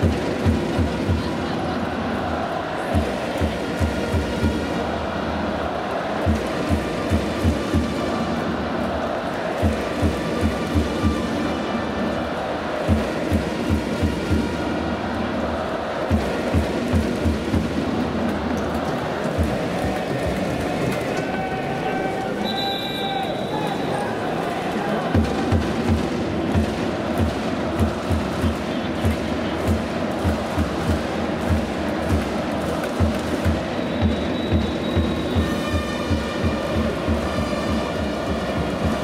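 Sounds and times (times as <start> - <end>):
drum beating: 0.0 - 11.6, 12.2 - 21.7, 24.2 - 39.0
crowd din: 0.0 - 39.0.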